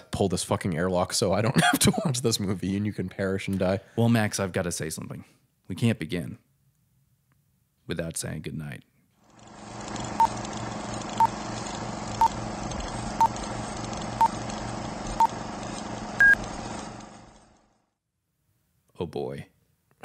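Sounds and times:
electronic countdown beeps: 16.2s - 16.4s.

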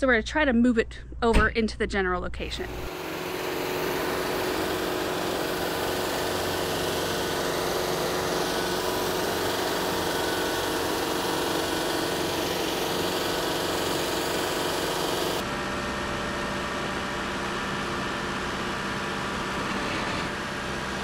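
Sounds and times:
tractor diesel engine running: 2.6s - 19.4s.

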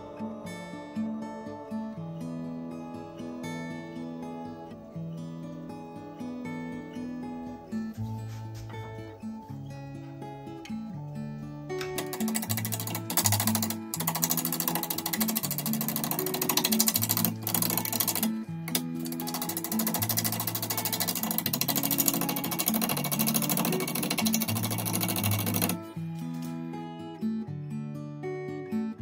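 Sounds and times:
acoustic guitar music: 0.0s - 29.0s
wood lathe cutting chatter: 12.0s - 25.9s.

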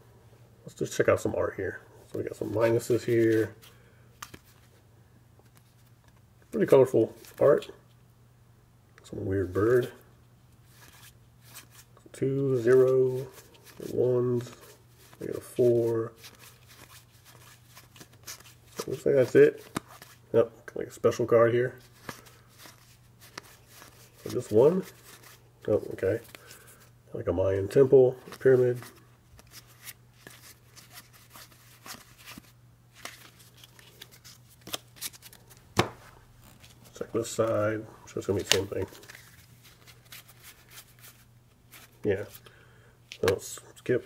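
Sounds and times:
steady low hum: 0.0s - 44.0s
playing cards sliding: 21.8s - 25.4s, 28.3s - 37.6s, 38.2s - 42.0s.

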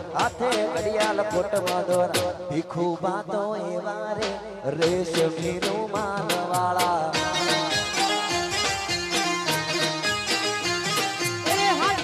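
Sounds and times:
percussion beat: 0.0s - 2.7s, 4.2s - 12.0s
electronic keyboard melody: 7.1s - 12.0s.

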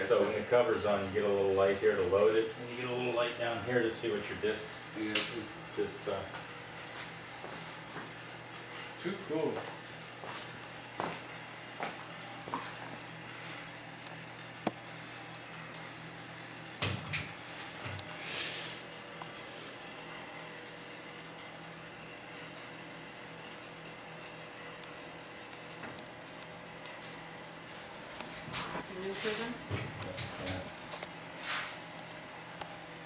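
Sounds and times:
low electrical hum: 0.0s - 33.0s.

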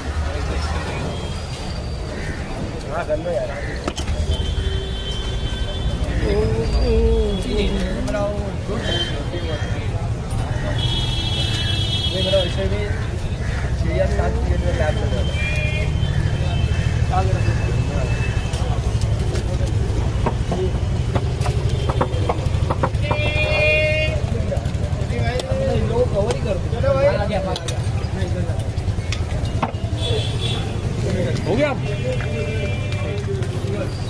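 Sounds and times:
background chatter: 0.0s - 34.0s
low traffic rumble: 0.0s - 34.0s.

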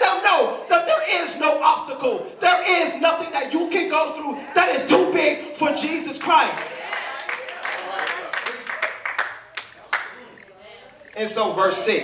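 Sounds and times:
hand claps: 6.6s - 10.2s
faint voices: 9.6s - 12.0s.

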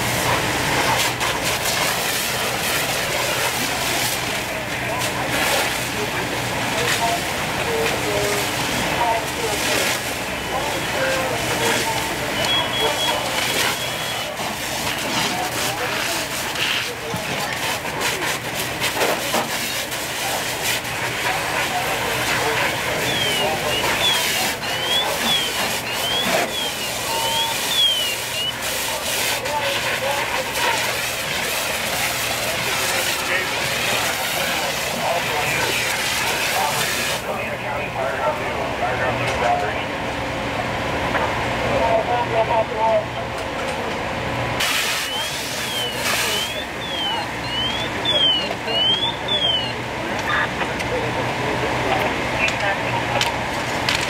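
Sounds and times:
hose spraying water: 0.0s - 37.5s, 44.6s - 49.8s
diesel engine humming: 0.0s - 54.0s.

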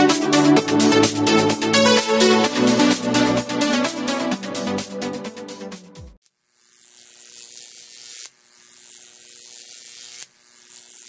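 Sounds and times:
electric buzzing hiss: 6.3s - 11.0s.

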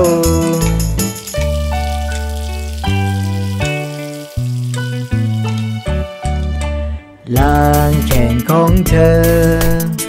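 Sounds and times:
children's song instrumental: 0.0s - 10.0s.

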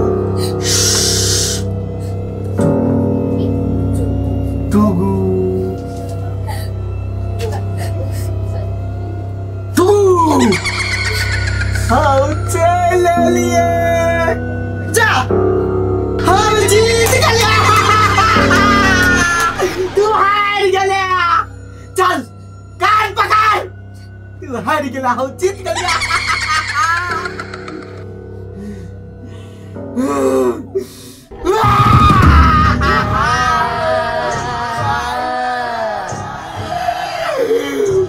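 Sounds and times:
eerie drone music: 0.0s - 24.4s, 25.0s - 38.0s
man cackling: 10.4s - 12.4s, 16.5s - 20.0s, 25.8s - 28.0s, 31.6s - 34.9s
horror music drone: 15.7s - 22.6s, 31.3s - 38.0s
man crying out: 16.2s - 20.2s, 31.3s - 36.2s.

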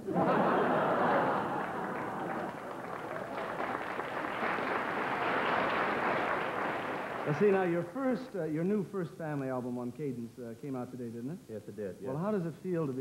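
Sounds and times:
audience laughing: 0.0s - 7.0s
audience applauding: 0.0s - 7.9s.

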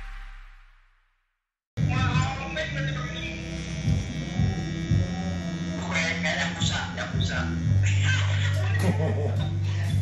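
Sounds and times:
tattoo machine humming: 1.8s - 10.0s.

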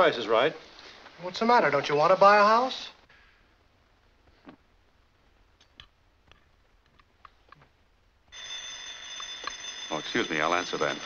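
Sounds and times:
telephone bell ringing: 8.3s - 11.0s.

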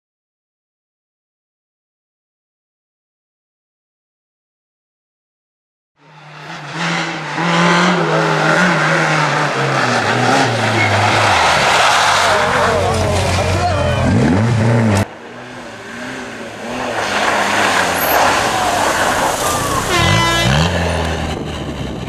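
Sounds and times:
rally car engine revving: 6.0s - 22.0s.

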